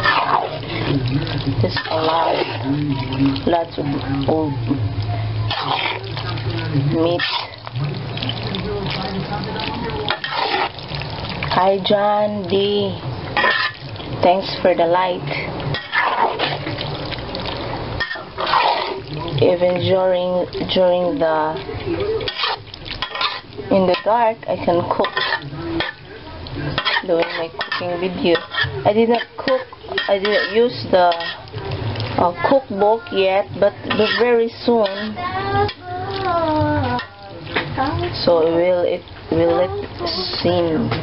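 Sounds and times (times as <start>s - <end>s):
spoon stirring wet pasta in pan: 0.0s - 41.0s
woman's sing-song voice: 27.0s - 41.0s.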